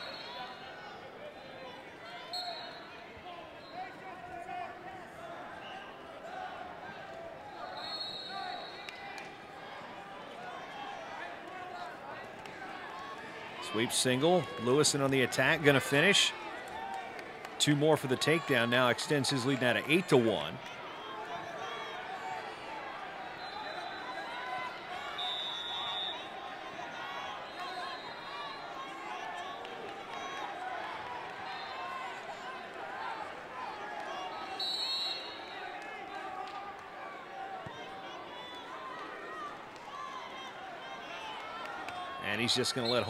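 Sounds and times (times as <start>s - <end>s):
crowd babble: 0.0s - 43.0s.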